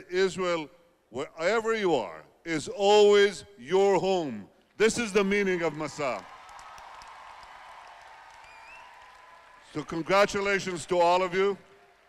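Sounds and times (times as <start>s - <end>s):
audience applause: 5.6s - 12.0s.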